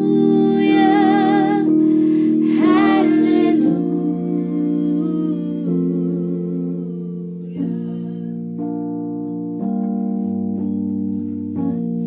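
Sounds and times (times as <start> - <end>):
soft wavering melody: 0.0 - 12.0
sustained keyboard chords: 0.0 - 12.0.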